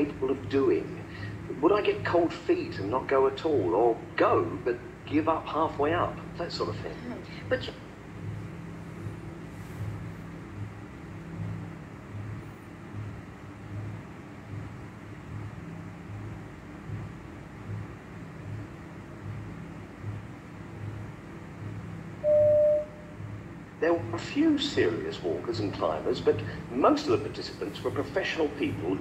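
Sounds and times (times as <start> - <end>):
low pulsing hum: 0.0 - 29.0
short beep: 22.2 - 23.1.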